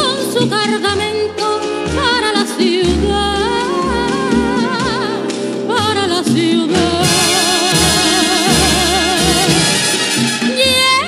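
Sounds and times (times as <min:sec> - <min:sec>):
soprano singing with vibrato: 0:00.0 - 0:09.8, 0:10.5 - 0:11.0
orchestral accompaniment: 0:00.3 - 0:11.0.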